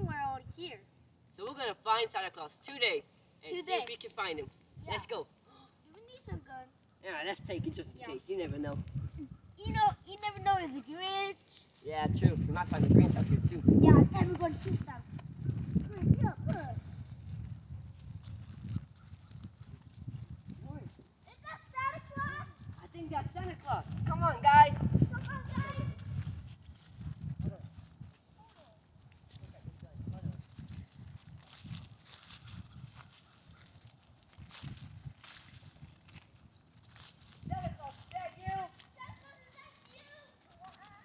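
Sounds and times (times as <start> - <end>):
footsteps on grass and dry leaves: 8.2 - 41.0
high-pitched voice calling out: 24.2 - 26.0.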